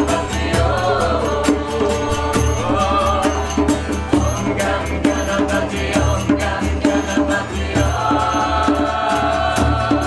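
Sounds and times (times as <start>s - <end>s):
group chanting: 0.0s - 10.0s
hand percussion beat: 0.0s - 10.0s.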